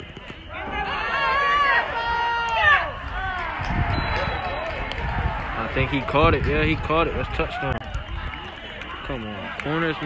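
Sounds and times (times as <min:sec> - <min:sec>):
people yelling: 0:00.3 - 0:10.0.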